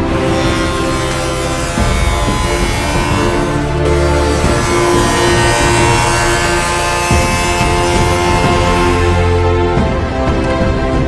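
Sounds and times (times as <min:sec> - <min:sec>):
stepping bass line: 0:00.0 - 0:10.2
synth chords: 0:00.0 - 0:11.0.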